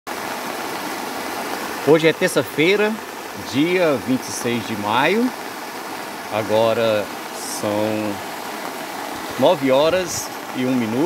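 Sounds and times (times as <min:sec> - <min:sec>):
river water rushing: 0:00.1 - 0:11.0.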